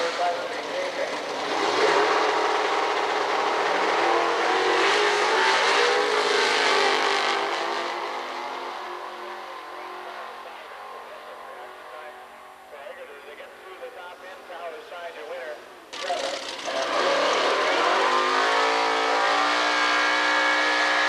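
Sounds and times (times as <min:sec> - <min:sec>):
drag racing engines at full throttle: 0:00.0 - 0:21.0.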